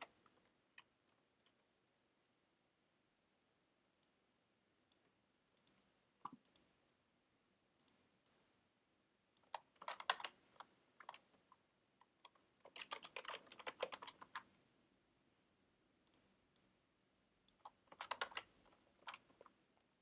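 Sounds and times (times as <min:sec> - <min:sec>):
faint keyboard typing: 0:00.0 - 0:01.6, 0:04.9 - 0:06.7, 0:07.8 - 0:08.4, 0:09.3 - 0:14.6, 0:16.0 - 0:16.7, 0:17.4 - 0:19.9.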